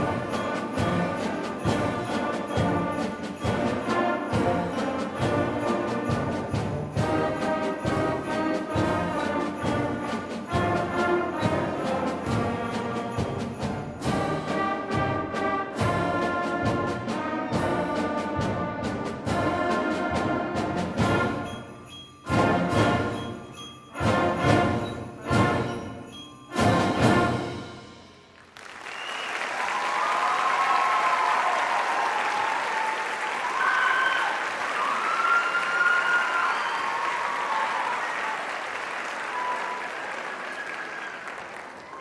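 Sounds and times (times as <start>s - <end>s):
concert band playing: 0.0s - 28.2s
steady drum beat: 0.0s - 28.2s.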